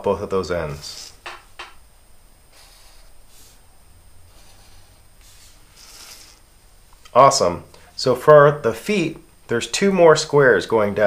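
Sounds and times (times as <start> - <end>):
marker scratching on paper: 2.5 - 3.6, 4.3 - 6.4.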